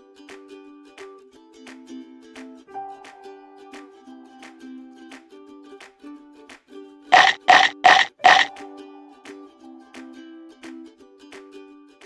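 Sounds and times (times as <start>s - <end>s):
light ukulele music: 0.0s - 12.0s
cartoon munching sounds: 7.2s - 8.5s.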